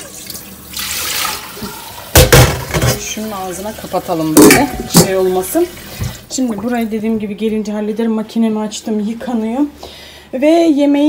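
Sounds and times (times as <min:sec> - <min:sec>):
tap water running into sink: 0:00.0 - 0:06.9.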